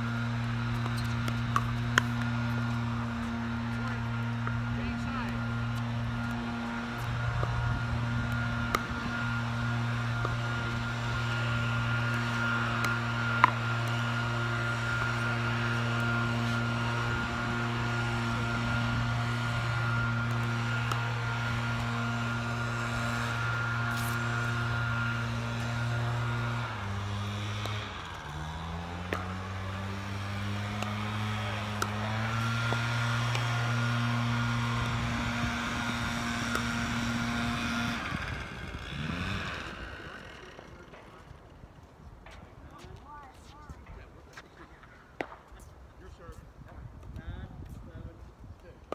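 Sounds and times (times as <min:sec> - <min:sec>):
small engine running: 0:00.0 - 0:45.4.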